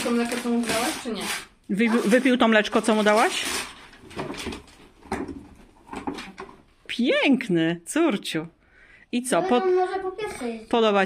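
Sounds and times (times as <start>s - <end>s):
cardboard box scraping: 0.0s - 4.4s
wrapping paper rustling: 0.0s - 4.9s.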